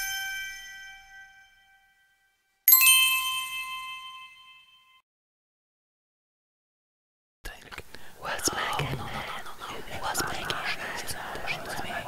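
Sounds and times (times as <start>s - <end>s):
bell-like chime ringing: 0.0s - 5.0s.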